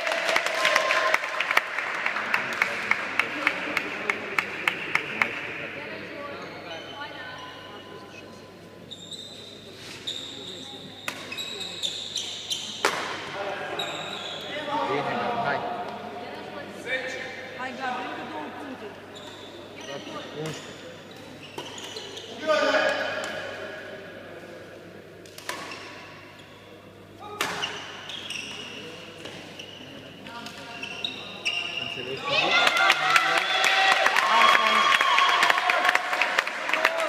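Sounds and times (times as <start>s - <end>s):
spectators applauding: 0.0s - 5.3s, 32.5s - 37.0s
shoe squeaks on court floor: 8.9s - 12.9s, 13.8s - 14.6s, 19.1s - 22.4s, 27.5s - 32.3s.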